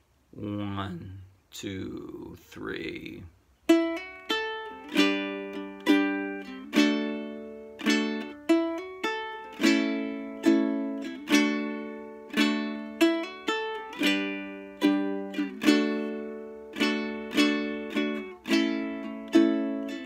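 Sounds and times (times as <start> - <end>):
picked ukulele notes: 2.8 - 20.0
ukulele chords: 3.6 - 20.0.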